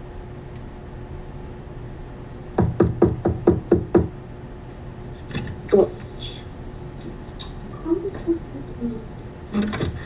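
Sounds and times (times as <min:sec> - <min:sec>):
knocking on a door: 0:02.6 - 0:04.2.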